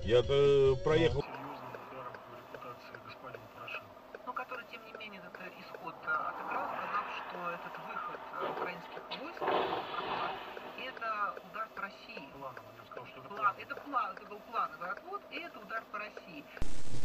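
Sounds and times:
noisy swell: 1.2s - 11.8s.

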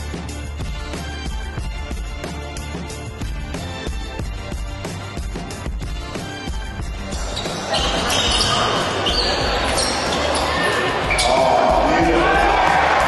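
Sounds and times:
background music with steady beat: 0.0s - 13.0s
shoe squeaks: 7.1s - 11.4s.

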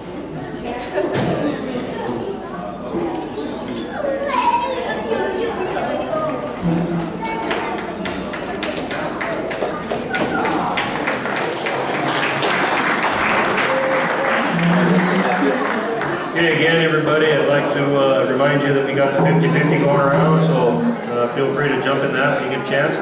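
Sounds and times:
people chattering in echoing hall: 0.0s - 23.0s.

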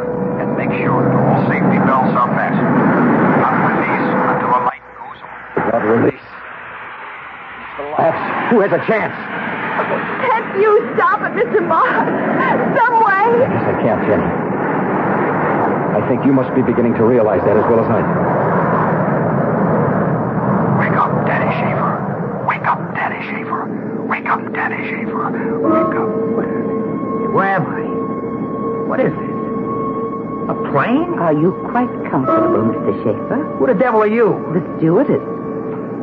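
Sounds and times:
airliner engines at takeoff: 0.0s - 36.0s
faint voices: 20.7s - 26.6s.

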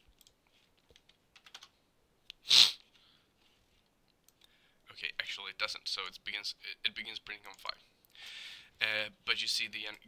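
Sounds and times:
computer keyboard keystrokes: 0.1s - 1.7s.

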